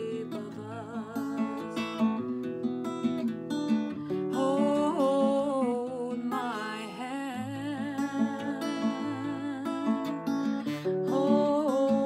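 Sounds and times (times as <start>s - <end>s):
acoustic guitar low notes: 0.0s - 12.0s
woman singing long notes: 4.3s - 10.2s, 11.0s - 12.0s.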